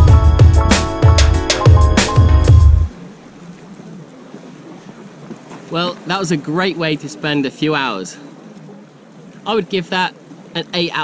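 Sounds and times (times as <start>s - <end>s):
sea: 0.0s - 11.0s
man talking: 9.4s - 11.0s.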